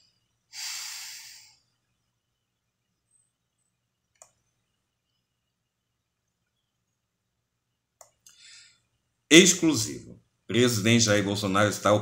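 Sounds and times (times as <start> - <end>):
man exhaling: 0.5 - 1.6.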